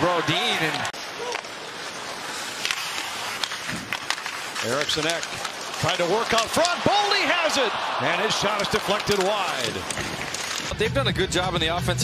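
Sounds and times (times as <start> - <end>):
hockey sticks and puck clicking: 0.6 - 7.6, 8.2 - 10.8
crowd hum: 5.5 - 10.6.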